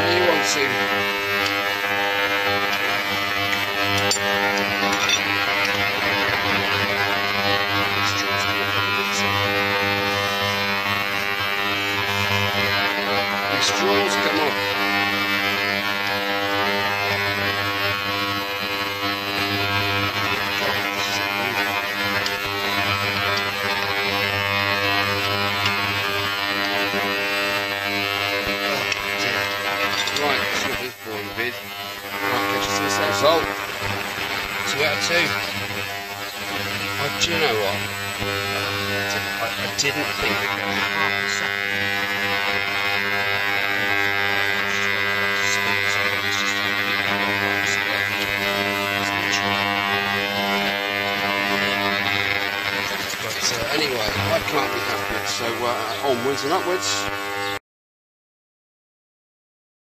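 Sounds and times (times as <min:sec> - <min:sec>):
droning hum: 0:00.0 - 0:57.6.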